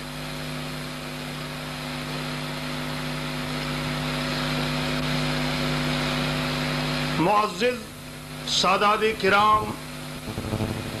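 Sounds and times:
steady multi-pitch hum: 9.6s - 11.0s.

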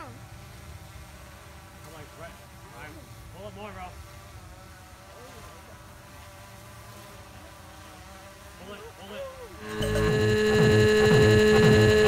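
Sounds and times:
drone propellers humming: 9.6s - 12.0s.

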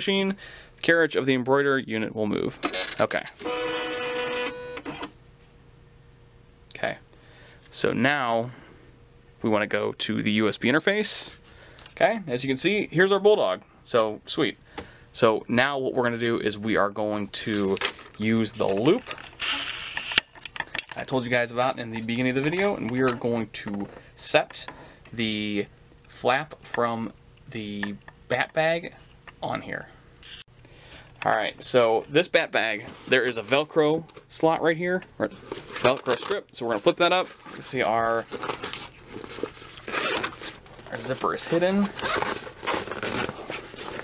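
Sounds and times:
rustling scrape: 32.8s - 33.5s, 35.2s - 44.0s.

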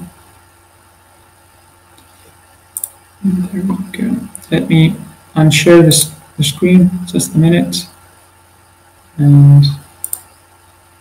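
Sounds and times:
faint steady hum: 0.0s - 11.0s
computer mouse double click: 10.0s - 10.3s.

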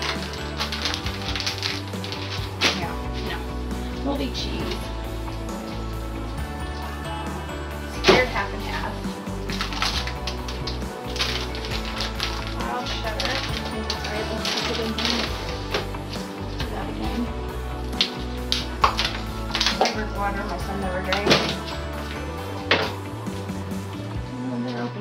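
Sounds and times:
background music: 0.0s - 25.0s
plastic containers clattering: 9.5s - 16.7s, 20.6s - 23.0s.

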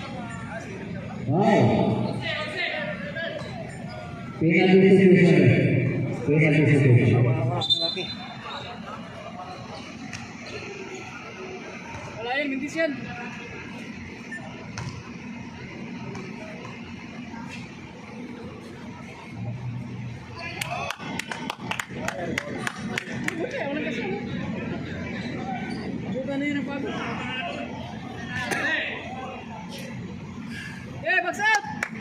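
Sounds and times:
faint voices: 8.2s - 31.4s
basketball bouncing on court: 14.7s - 15.0s
people talking: 15.8s - 30.2s
rhythmic clapping: 20.6s - 23.6s, 31.5s - 32.0s.

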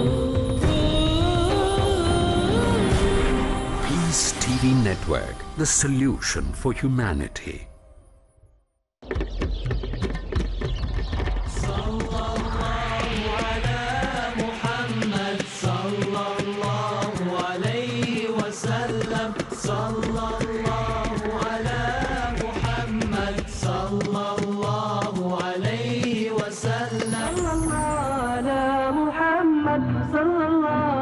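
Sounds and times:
vocal chant: 0.0s - 7.7s, 11.5s - 31.0s
steady low drone: 11.4s - 16.0s.

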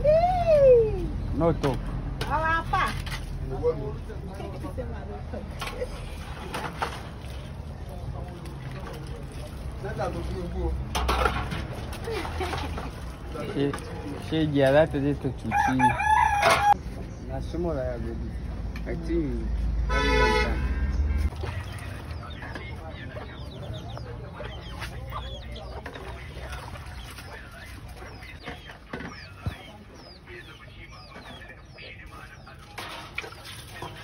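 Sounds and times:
dishwater sloshing in metal basin: 5.5s - 15.0s, 21.2s - 23.4s, 24.7s - 29.6s, 32.2s - 34.0s
chickens clucking: 21.3s - 34.0s.

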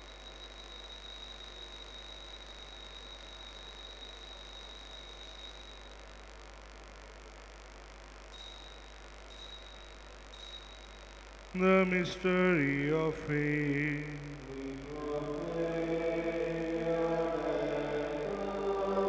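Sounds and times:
faint altar bell ringing: 0.0s - 6.2s, 8.3s - 11.4s.

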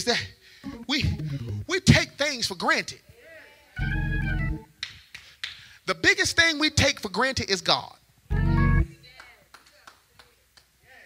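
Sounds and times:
organ chord with deep bass: 3.8s - 4.7s, 8.3s - 8.8s.

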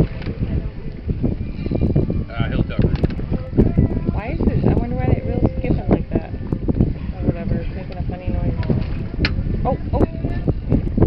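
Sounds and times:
wind buffeting microphone: 0.0s - 11.0s
indistinct voices: 2.2s - 10.9s.

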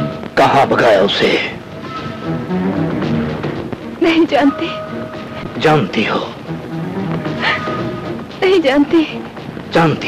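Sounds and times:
voice-like cries: 7.4s - 8.2s.

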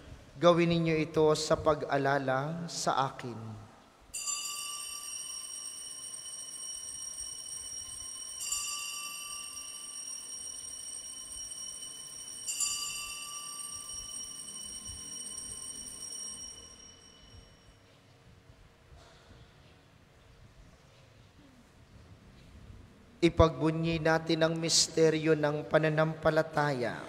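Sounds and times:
altar bell ringing: 4.2s - 17.9s.

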